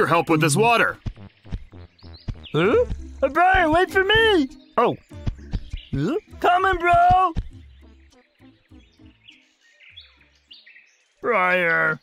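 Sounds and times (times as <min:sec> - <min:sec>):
soft low tones: 0:00.0 - 0:07.6
faint birds chirping: 0:00.0 - 0:12.0.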